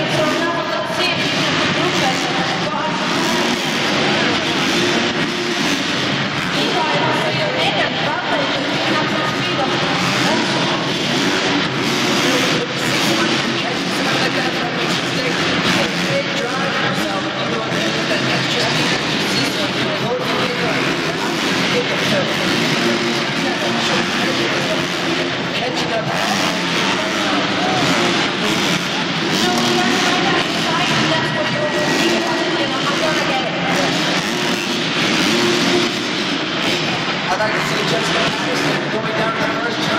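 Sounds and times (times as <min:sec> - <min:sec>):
crowd noise: 0:00.0 - 0:39.9
indistinct voices: 0:00.0 - 0:39.9
loud arena din: 0:00.0 - 0:39.9
motorbike engines revving: 0:00.0 - 0:39.9.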